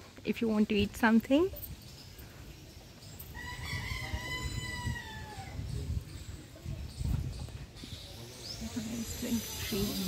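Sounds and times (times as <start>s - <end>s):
rooster crowing: 3.3s - 5.6s.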